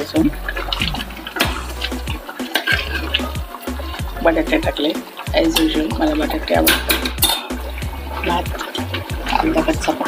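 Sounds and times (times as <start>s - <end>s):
background music: 0.0s - 10.0s
ladle stirring in a pot: 0.0s - 10.0s.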